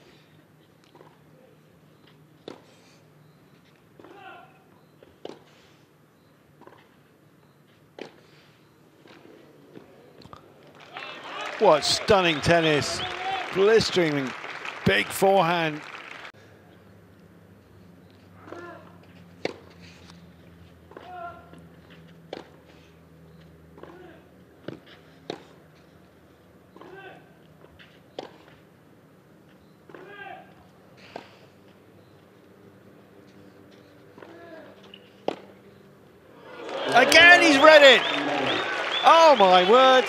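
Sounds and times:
crowd reacting: 10.8 - 16.3, 36.4 - 40.0
racket striking tennis ball: 19.4 - 19.7.

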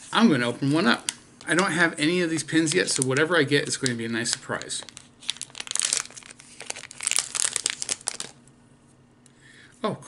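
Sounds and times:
packaging being torn and crinkled: 2.6 - 8.4.

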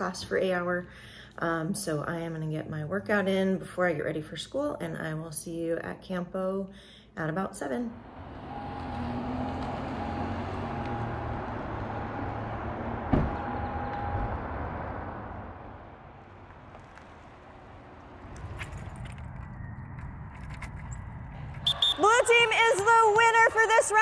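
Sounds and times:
car driving: 7.8 - 22.6
car door thump: 13.1 - 13.4.

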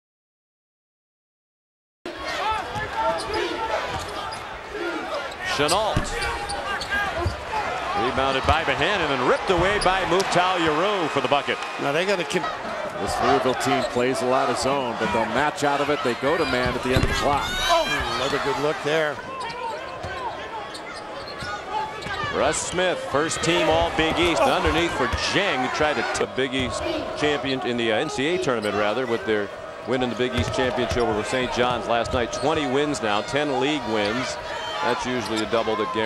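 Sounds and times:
arena crowd noise: 2.1 - 36.0.

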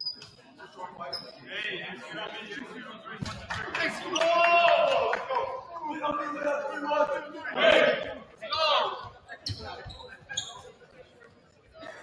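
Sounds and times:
voices echoing in a gym: 0.0 - 12.0.

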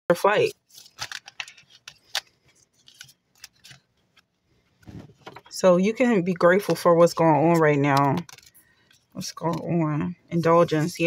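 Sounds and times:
cards being shuffled: 0.7 - 5.5, 7.4 - 8.6.

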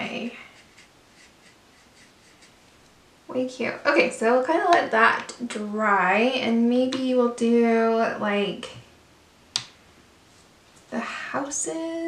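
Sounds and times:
brush strokes on paper: 0.0 - 2.9.

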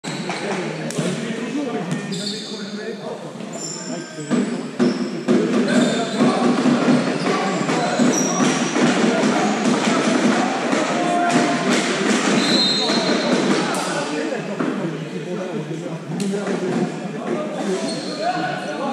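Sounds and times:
ball bouncing on court: 1.8 - 2.2, 4.3 - 13.8
sneakers squeaking: 1.8 - 10.2, 12.0 - 13.6, 17.6 - 18.4.

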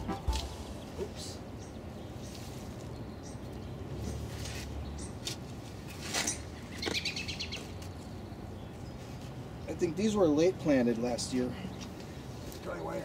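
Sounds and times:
birds chirping: 0.0 - 5.3, 6.4 - 13.0.

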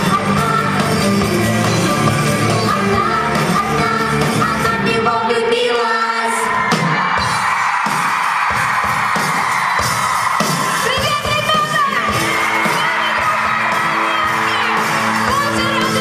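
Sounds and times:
pop-rock band playing: 0.0 - 5.7, 6.4 - 16.0
woman singing: 0.0 - 6.5.

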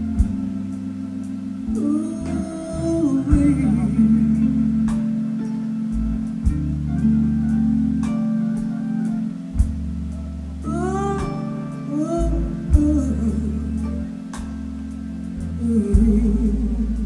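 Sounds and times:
live blues band playing: 0.0 - 17.0
woman singing: 1.7 - 5.3, 10.6 - 14.3, 15.6 - 17.0
drum hits: 6.2 - 7.0, 9.6 - 10.1.

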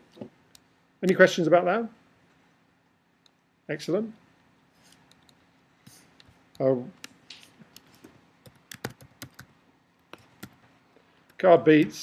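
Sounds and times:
keyboard keys clicking: 7.8 - 9.5.

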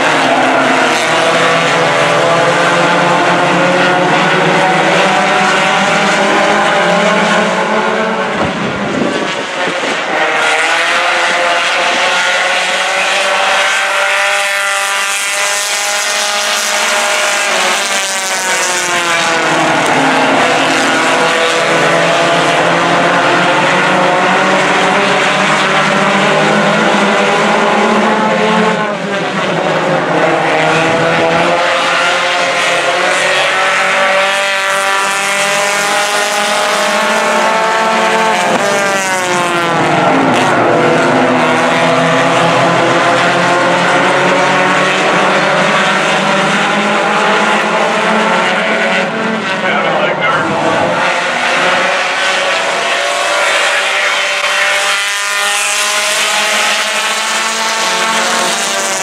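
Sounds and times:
race car engines: 0.0 - 59.0.

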